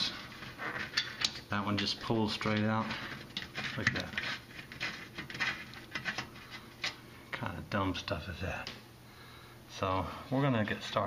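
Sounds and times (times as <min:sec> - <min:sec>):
screw scraping on metal: 0:00.0 - 0:07.0.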